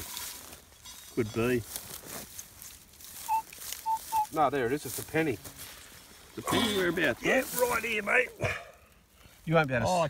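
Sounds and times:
metal detector beeps: 0:03.2 - 0:04.4.

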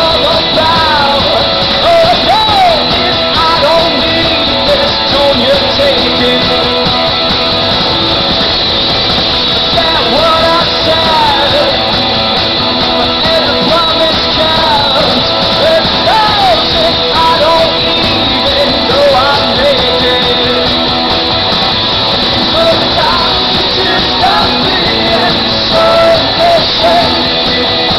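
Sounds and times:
man singing lead vocal: 0:00.0 - 0:27.9
rock band playing live: 0:00.0 - 0:27.9.

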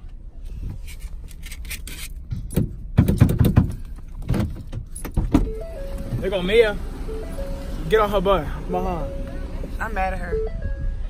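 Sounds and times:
knocks and rattles around car: 0:02.2 - 0:06.4
tune of held notes: 0:05.5 - 0:11.0.

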